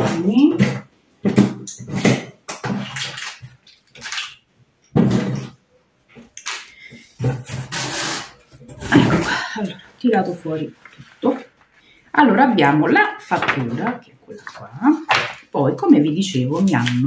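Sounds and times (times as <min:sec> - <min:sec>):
paper rustling: 0:08.9 - 0:12.0.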